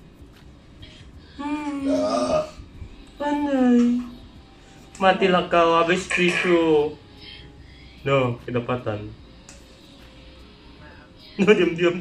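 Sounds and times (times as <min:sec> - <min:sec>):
person making drawn-out vocal sounds: 0:01.4 - 0:02.6.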